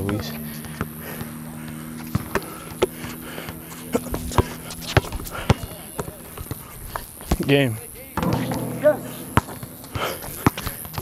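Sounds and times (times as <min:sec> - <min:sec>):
basketball bouncing on hard court: 0:02.1 - 0:06.6, 0:08.2 - 0:11.0.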